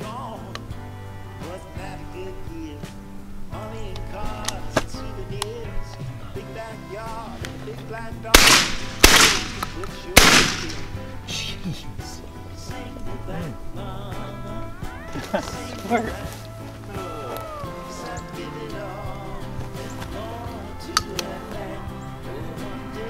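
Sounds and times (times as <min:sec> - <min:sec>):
background music: 0:00.0 - 0:23.0
shotgun shots: 0:08.3 - 0:11.2.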